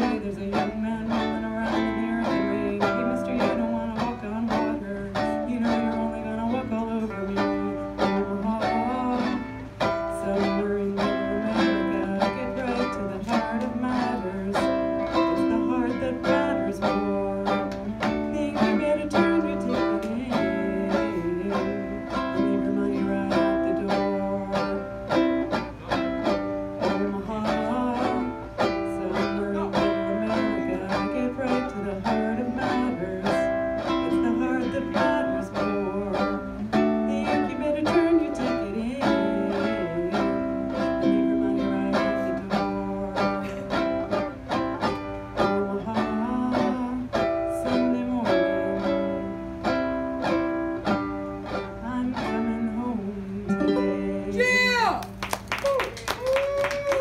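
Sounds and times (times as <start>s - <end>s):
ukulele strumming chords: 0.0s - 57.0s
woman singing: 0.0s - 57.0s.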